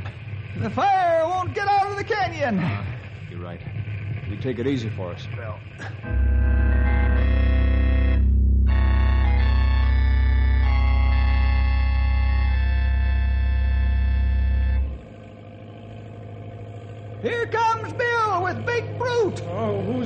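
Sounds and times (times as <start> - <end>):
organ chords: 5.6 - 20.0.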